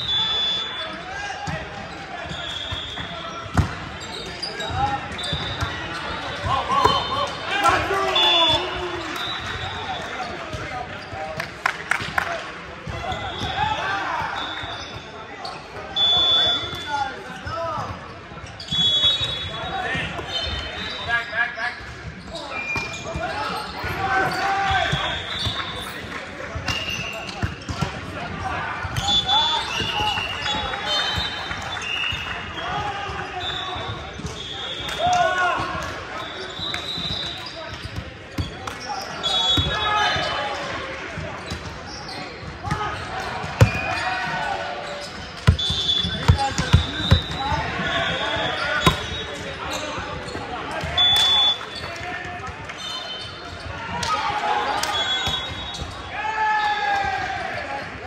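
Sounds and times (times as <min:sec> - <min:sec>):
sneakers squeaking on court: 0:00.0 - 0:07.2, 0:12.8 - 0:28.2, 0:35.6 - 0:40.8, 0:41.4 - 0:53.9
shouts and voices: 0:06.4 - 0:10.3
volleyballs thudding: 0:45.4 - 0:47.8, 0:48.8 - 0:49.2.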